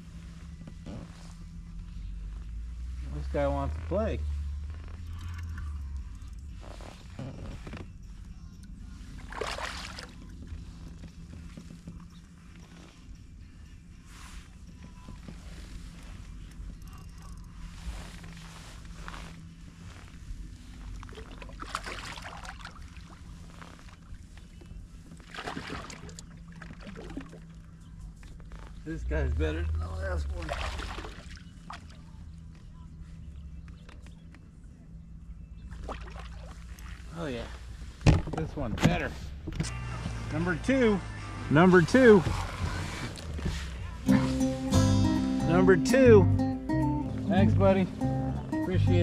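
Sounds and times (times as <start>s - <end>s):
steady low hum: 0.0s - 49.0s
water sloshing and splashing: 9.1s - 10.6s, 20.9s - 24.3s, 25.0s - 27.7s, 30.3s - 32.2s, 35.6s - 37.2s.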